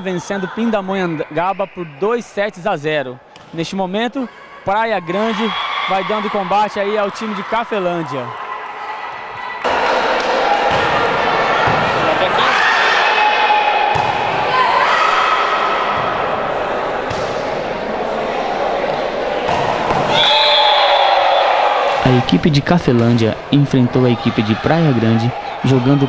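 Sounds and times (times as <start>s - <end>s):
players shouting and crowd voices: 0.0s - 26.0s
volleyball strikes and thuds: 9.8s - 12.0s, 13.9s - 14.4s, 17.0s - 17.6s, 19.4s - 20.4s.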